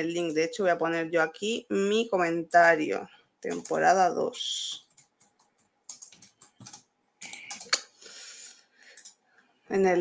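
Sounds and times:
typing on computer keyboard: 3.5 - 3.8, 4.6 - 7.9, 8.9 - 9.2.

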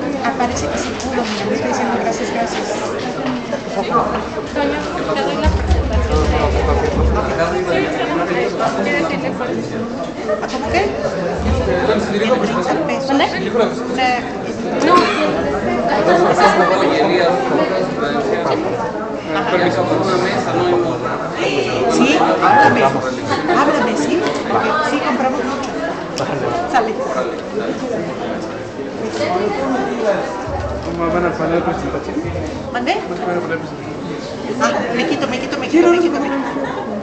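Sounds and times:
indistinct chatter of people: 0.0 - 37.0.

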